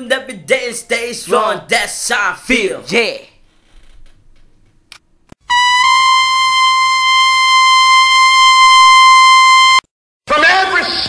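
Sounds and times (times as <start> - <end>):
person speaking: 0.0 - 3.4
high brass-like note: 5.4 - 9.8.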